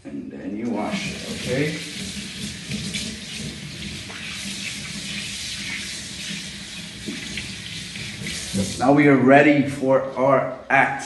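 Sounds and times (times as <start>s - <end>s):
tap water running into sink: 0.7s - 8.9s.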